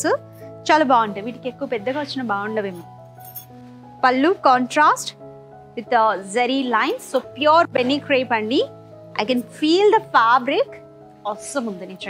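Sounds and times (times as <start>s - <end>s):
woman's voice: 0.0s - 2.8s, 4.0s - 5.2s, 5.8s - 12.0s
background music of sustained tones: 0.0s - 12.0s.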